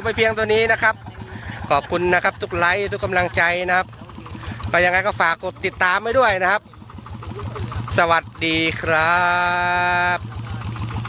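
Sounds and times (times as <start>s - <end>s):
tractor engine idling: 0.0s - 11.0s.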